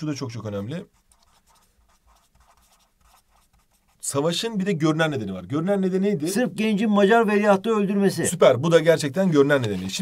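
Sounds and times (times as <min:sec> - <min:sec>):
marker scratching on paper: 0:00.5 - 0:04.1.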